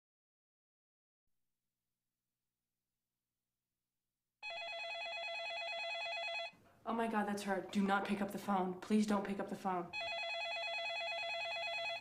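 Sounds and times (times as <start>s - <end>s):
telephone warbling ring: 4.4s - 6.6s, 10.0s - 12.0s.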